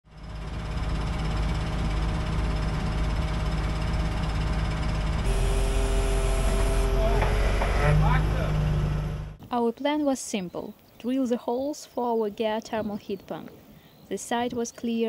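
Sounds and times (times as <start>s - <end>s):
constant whine: 0.1s - 9.4s
drilling rig engine drone: 0.1s - 9.4s.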